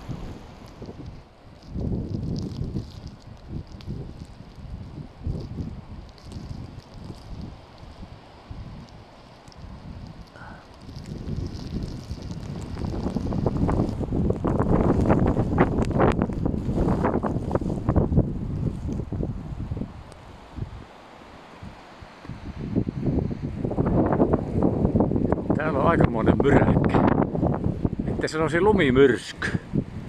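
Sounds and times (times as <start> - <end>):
wind buffeting microphone: 0.0 - 20.9, 21.5 - 30.0.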